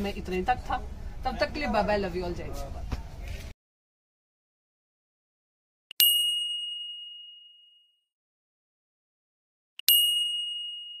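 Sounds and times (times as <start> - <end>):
bright bell-like ding: 6.0 - 8.0, 9.8 - 11.0.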